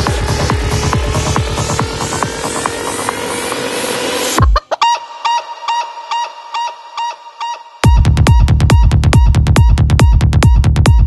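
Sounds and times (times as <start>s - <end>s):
kick drum and bassline: 0.0s - 4.7s, 7.8s - 11.0s
sampled chicken clucks: 4.4s - 7.6s.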